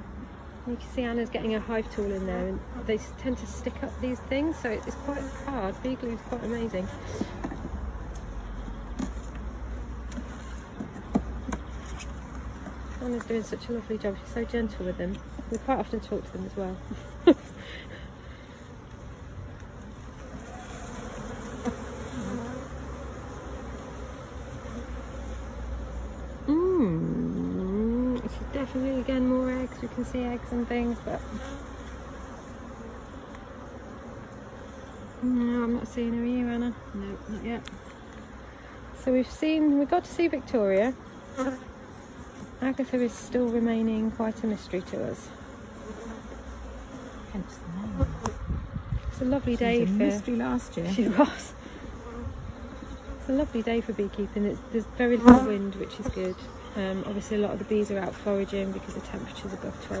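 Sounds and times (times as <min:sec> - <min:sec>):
honeybees buzzing: 0:00.0 - 1:00.0.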